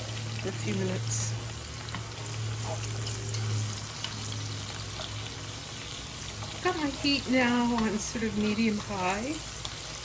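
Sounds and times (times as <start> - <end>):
onion and garlic sizzling in oil: 0.0 - 10.0
wooden spoon stirring in pan: 1.8 - 10.0.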